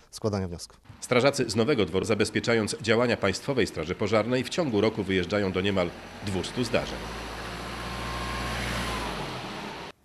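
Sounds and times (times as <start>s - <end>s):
van engine hum: 0.9s - 10.0s.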